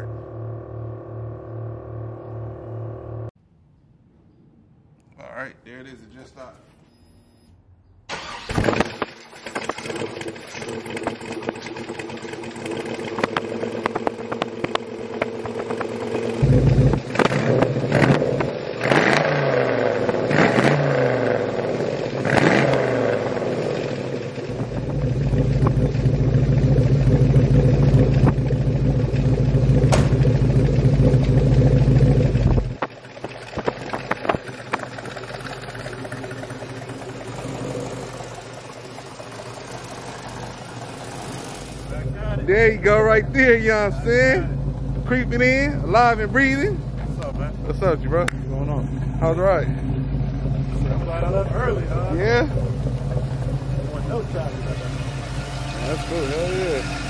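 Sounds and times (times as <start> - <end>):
car engine idling and revving: 0.0 - 3.4, 8.2 - 57.0.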